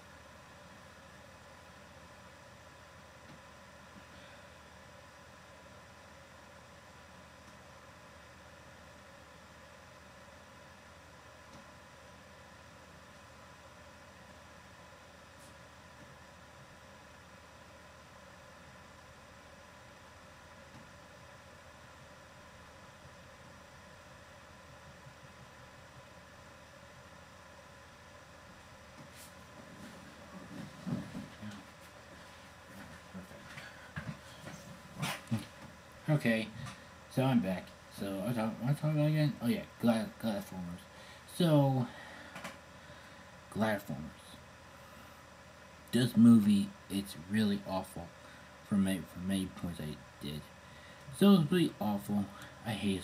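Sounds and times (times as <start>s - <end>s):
faint hum tones: 0.0s - 53.0s
microphone hiss: 0.0s - 53.0s.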